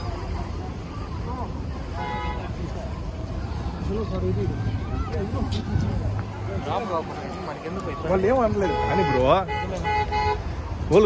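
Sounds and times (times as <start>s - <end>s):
people talking and calling out: 0.0s - 11.0s
road traffic rumble: 0.0s - 11.0s
car horn: 2.0s - 2.5s, 8.5s - 10.6s.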